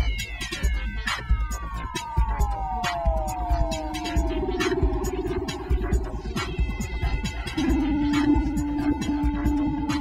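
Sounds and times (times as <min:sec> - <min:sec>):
electronic music with a beat: 0:00.0 - 0:10.0
synth tones gliding downward: 0:03.1 - 0:10.0.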